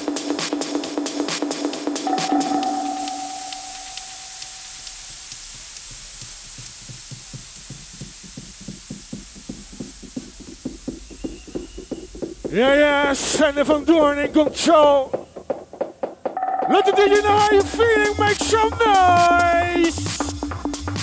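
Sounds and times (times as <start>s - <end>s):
drum roll: 0.0s - 21.0s
held synth tones: 2.0s - 5.0s
hissing white noise wash: 3.0s - 15.8s.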